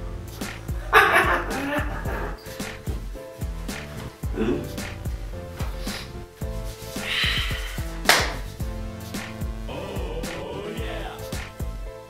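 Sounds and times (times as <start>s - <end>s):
music with steady beat: 0.0s - 12.0s.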